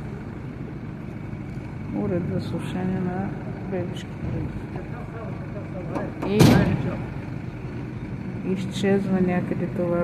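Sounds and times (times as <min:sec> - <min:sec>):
street traffic: 0:00.0 - 0:10.0
woman's voice: 0:01.9 - 0:04.8, 0:06.0 - 0:07.1, 0:08.4 - 0:10.0.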